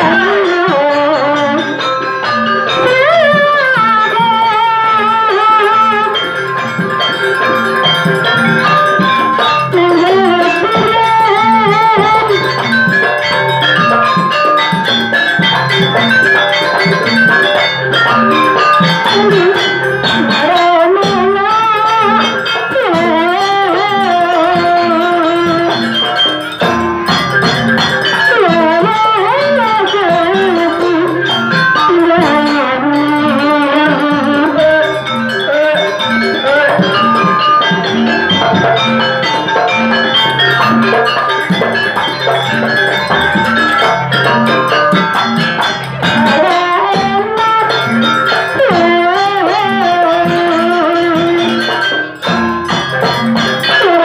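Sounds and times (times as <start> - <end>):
repeating drum pattern: 0.0 - 54.0
sliding wavering melody line: 0.0 - 54.0.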